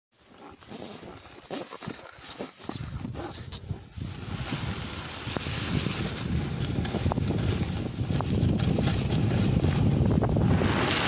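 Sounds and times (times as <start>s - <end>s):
wind rumbling on microphone: 2.6s - 11.0s
snowboard sliding over snow: 2.8s - 11.0s.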